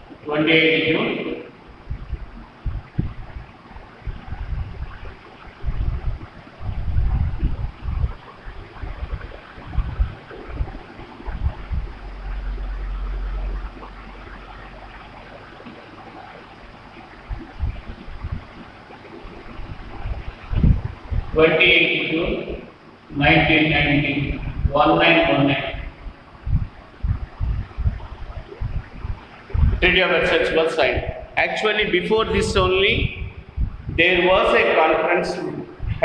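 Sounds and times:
steady low hum: 0:00.0 - 0:36.0
rumbles and thumps on microphone: 0:01.2 - 0:14.9, 0:17.2 - 0:18.6, 0:19.3 - 0:21.4, 0:23.2 - 0:30.0, 0:30.8 - 0:31.4, 0:32.2 - 0:34.0, 0:35.8 - 0:36.0.

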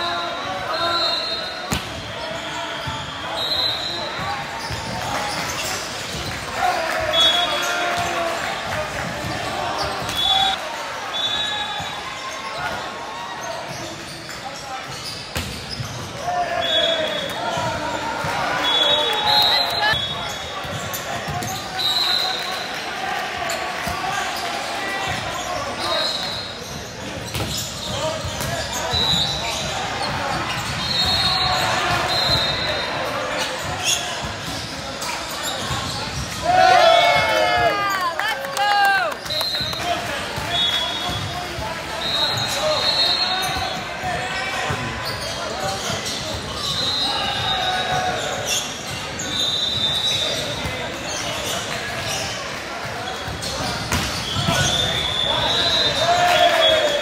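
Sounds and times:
sneakers squeaking on court: 0:00.8 - 0:08.2, 0:09.0 - 0:10.6, 0:11.2 - 0:21.9, 0:23.5 - 0:36.5, 0:40.4 - 0:57.0.

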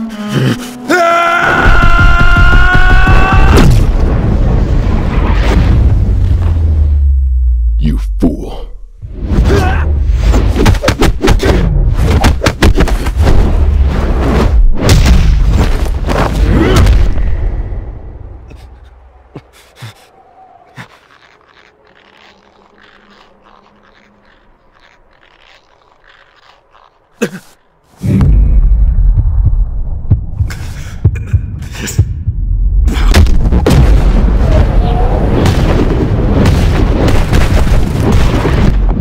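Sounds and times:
low hum: 0:16.9 - 0:36.4
faint crackles: 0:18.5 - 0:28.0
bass-heavy hits and impacts: 0:28.0 - 0:34.6.

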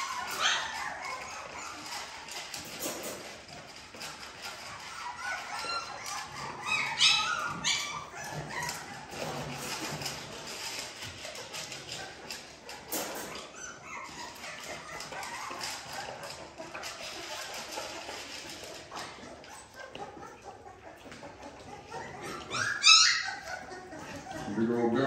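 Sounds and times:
puppies whimpering and yipping: 0:00.0 - 0:25.0.

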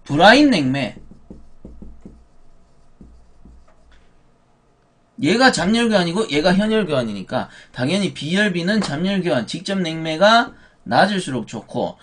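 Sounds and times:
marker writing on whiteboard: 0:00.5 - 0:04.2.

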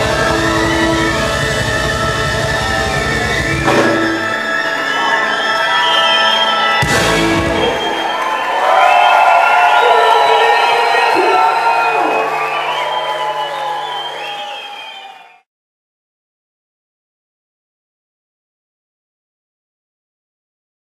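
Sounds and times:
live band playing: 0:00.0 - 0:08.3
audience cheering and whooping: 0:00.0 - 0:15.5
cymbal crash: 0:06.8 - 0:08.0.

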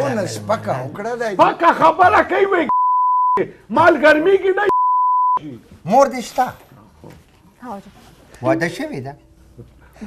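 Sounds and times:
censor bleep tone: 0:02.7 - 0:03.4, 0:04.7 - 0:05.4.

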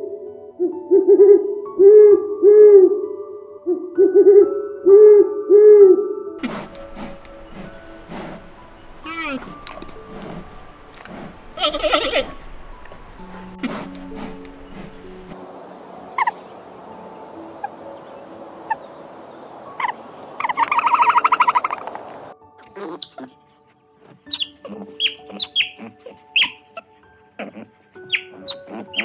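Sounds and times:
soft steady music: 0:00.0 - 0:29.0
animal chirps: 0:06.4 - 0:15.4, 0:16.2 - 0:16.4, 0:19.7 - 0:22.0, 0:22.6 - 0:23.4, 0:24.3 - 0:26.6, 0:27.4 - 0:29.0
rapid trilling call: 0:06.4 - 0:16.7, 0:17.3 - 0:22.3.

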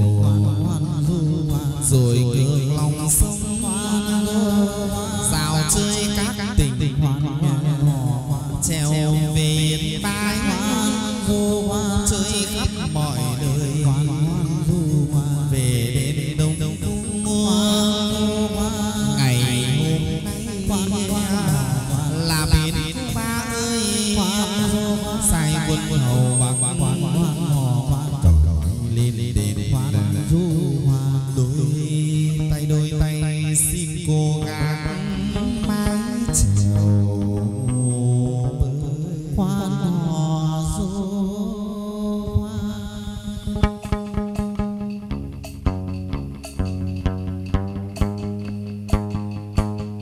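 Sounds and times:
instrumental accompaniment: 0:00.0 - 0:40.1, 0:42.2 - 0:50.0
person singing ornamented lines: 0:00.0 - 0:45.0
sustained instrumental notes: 0:16.4 - 0:31.3.

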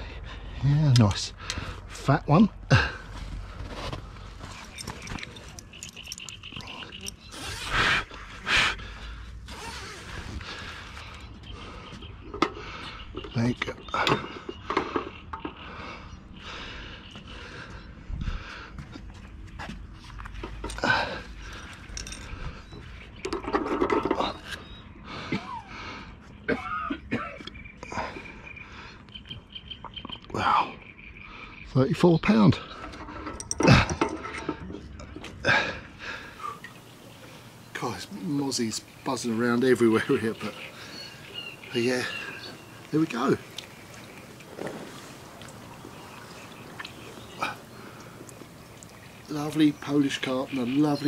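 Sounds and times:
heavy breathing: 0:01.3 - 0:02.0, 0:06.6 - 0:13.2, 0:14.0 - 0:19.3, 0:20.6 - 0:23.0, 0:32.6 - 0:38.2, 0:40.0 - 0:42.9, 0:43.9 - 0:49.2.

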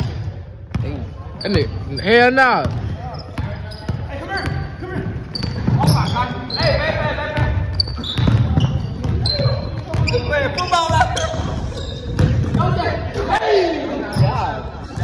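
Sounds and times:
players' voices and shouts echoing: 0:00.0 - 0:15.0
basketball bouncing on hardwood floor: 0:08.1 - 0:10.2, 0:12.1 - 0:12.7.

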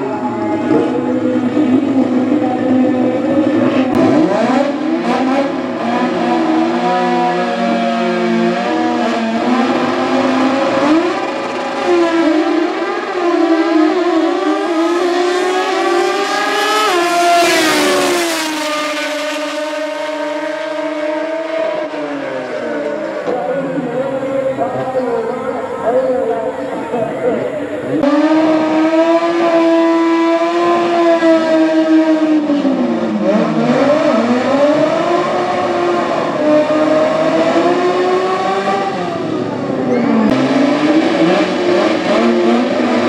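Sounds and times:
drag-racing engines revving: 0:00.0 - 0:43.0.

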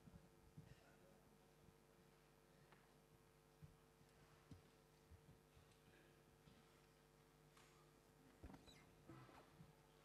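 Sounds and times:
faint squeak: 0:08.4 - 0:09.6.

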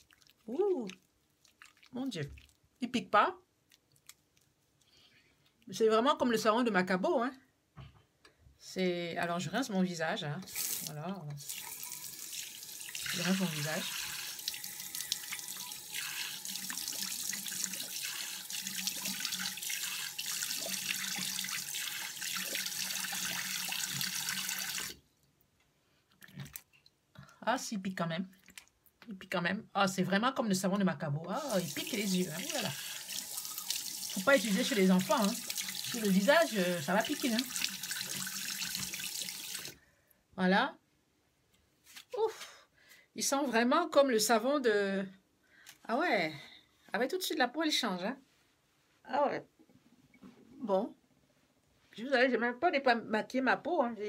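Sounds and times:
tap water running into sink: 0:10.5 - 0:25.0, 0:31.4 - 0:39.8
water splashing on face: 0:10.5 - 0:25.0, 0:31.4 - 0:39.8.

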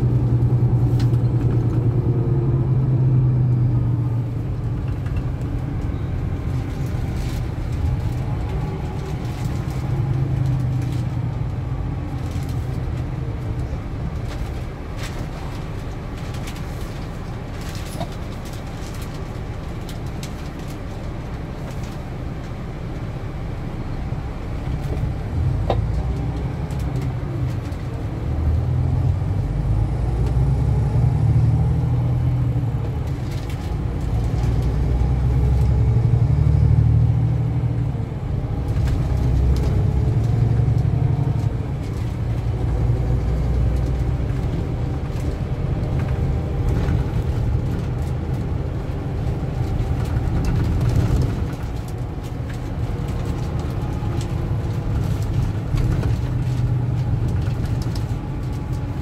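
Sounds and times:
diesel engine rumble: 0:00.0 - 0:59.0
road noise: 0:00.0 - 0:59.0.

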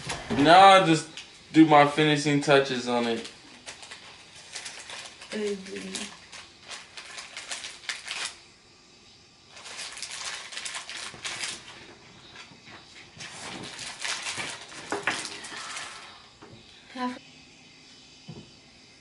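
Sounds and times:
plastic icing bag crinkling: 0:02.6 - 0:08.4, 0:09.5 - 0:12.5, 0:13.1 - 0:16.2.

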